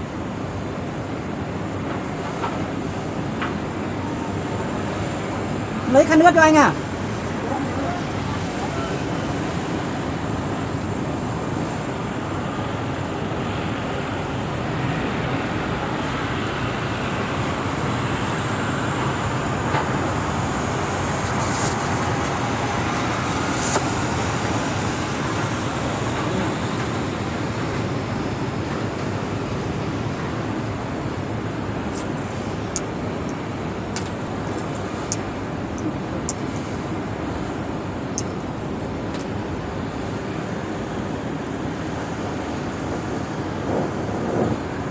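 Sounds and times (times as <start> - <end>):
torch flame roaring: 0.1 - 44.9
wind on microphone: 41.3 - 44.9.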